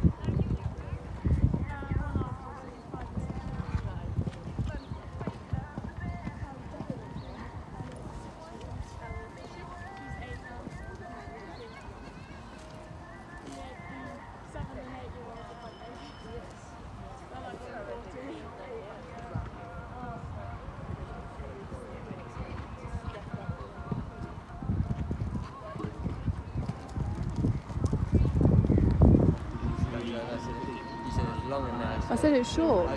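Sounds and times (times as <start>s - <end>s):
indistinct background voices: 0.0s - 32.9s
horse cantering on sand: 0.1s - 17.9s, 21.7s - 30.3s.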